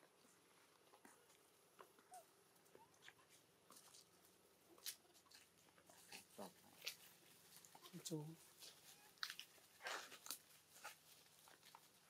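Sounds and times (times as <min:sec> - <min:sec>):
crackles of dry leaf litter: 0:00.0 - 0:12.0.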